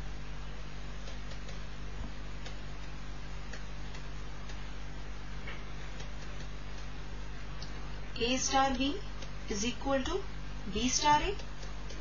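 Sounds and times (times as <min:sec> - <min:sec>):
steady electrical hum: 0:00.0 - 0:12.0
faint regular ticks: 0:01.0 - 0:01.7, 0:02.4 - 0:04.7, 0:05.5 - 0:07.0, 0:10.9 - 0:12.0.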